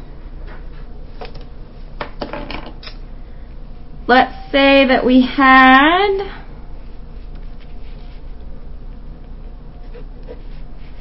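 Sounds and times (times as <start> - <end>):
low buzzing hum: 2.8 - 11.0.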